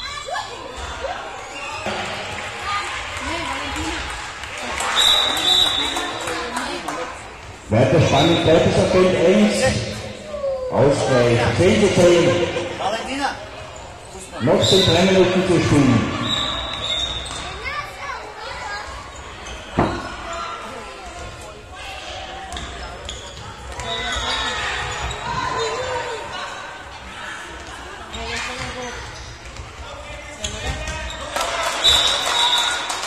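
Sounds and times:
players' voices: 0:00.0 - 0:32.5.

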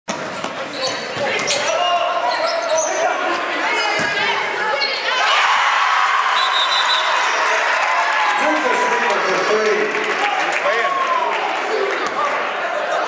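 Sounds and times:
sneakers squeaking: 0:00.1 - 0:05.2
spectators talking: 0:00.2 - 0:13.0
crowd cheering: 0:03.1 - 0:13.0.

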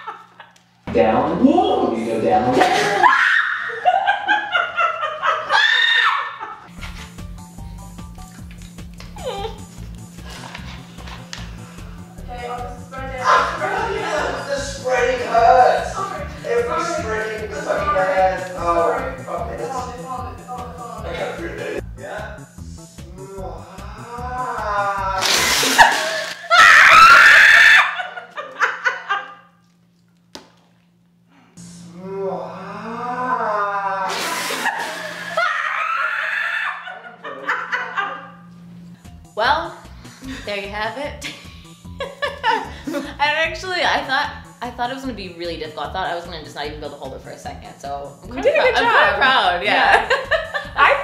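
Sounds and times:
woman laughing with high squeals: 0:02.8 - 0:06.7, 0:24.9 - 0:29.3, 0:33.5 - 0:37.2
music with low beat: 0:06.7 - 0:25.2, 0:39.0 - 0:51.0.

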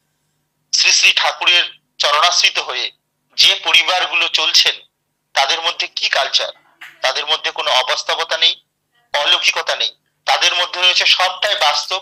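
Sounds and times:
man speaking: 0:00.8 - 0:04.8, 0:05.4 - 0:12.0.

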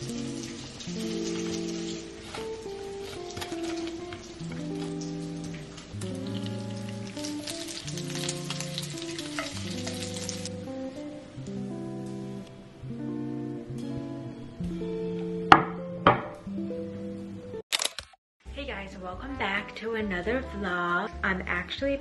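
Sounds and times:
bacon sizzling in a frying pan: 0:00.0 - 0:12.4
background music: 0:00.0 - 0:17.6, 0:18.4 - 0:22.0.

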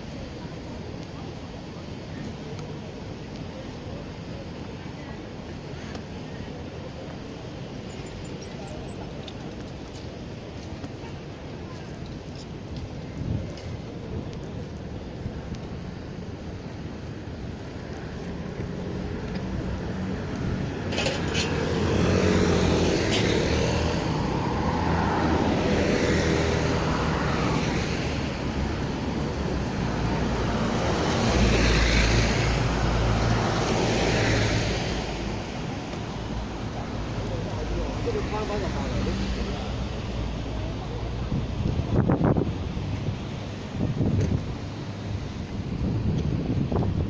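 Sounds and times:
road traffic passing: 0:00.0 - 0:47.0.

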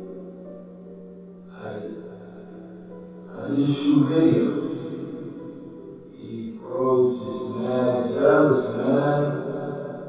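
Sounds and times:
man speaking with heavy echo: 0:01.5 - 0:02.0, 0:03.3 - 0:05.0, 0:06.1 - 0:09.8.

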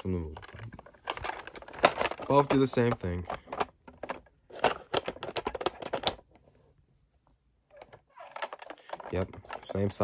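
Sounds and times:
plastic toy trailers clattering: 0:00.0 - 0:06.2, 0:07.8 - 0:10.0.

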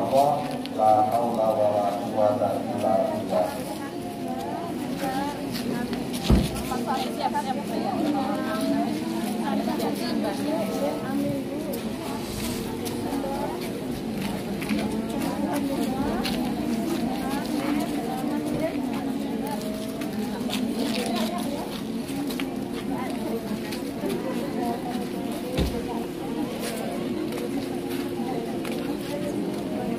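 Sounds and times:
women chattering: 0:02.1 - 0:29.9
thump: 0:06.2 - 0:06.6.

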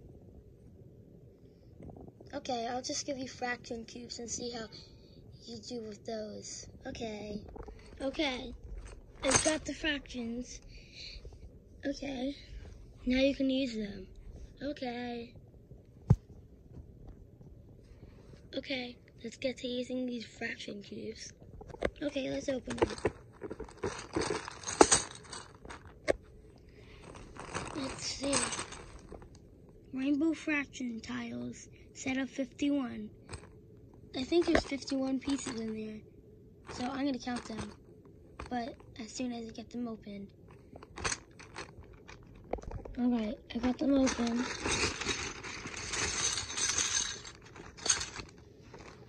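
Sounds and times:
plastic bag rustling: 0:21.6 - 0:29.4, 0:36.7 - 0:37.8, 0:40.5 - 0:49.0
plastic tiles clattering: 0:21.7 - 0:26.2, 0:26.9 - 0:29.3, 0:40.8 - 0:49.0.

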